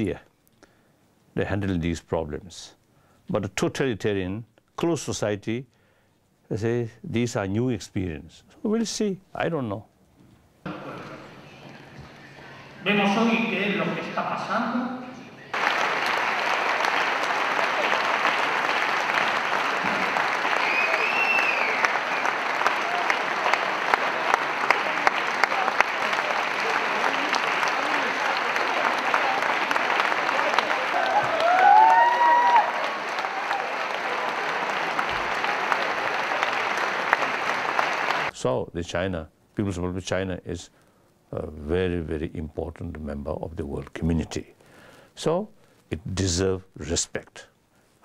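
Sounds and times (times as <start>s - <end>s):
audience applauding: 15.4s - 38.3s.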